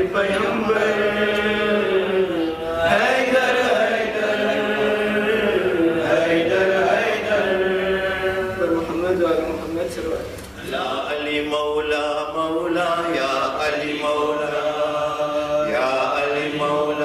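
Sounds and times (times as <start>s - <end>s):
man chanting: 0.0s - 17.0s.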